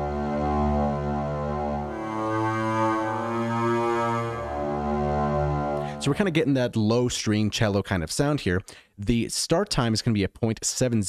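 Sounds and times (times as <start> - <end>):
sustained low bowed-string notes: 0.0 - 6.4.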